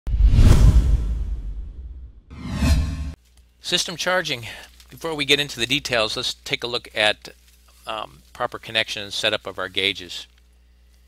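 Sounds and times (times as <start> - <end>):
heavy bass hit: 0.1 - 3.2
whoosh sound effect: 0.1 - 3.2.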